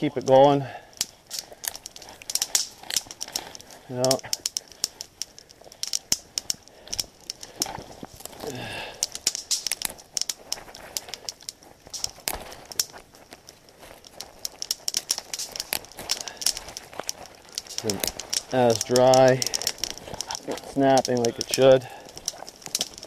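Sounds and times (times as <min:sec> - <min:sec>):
brush rustling: 0:00.0 - 0:23.0
twigs snapping: 0:00.0 - 0:23.0.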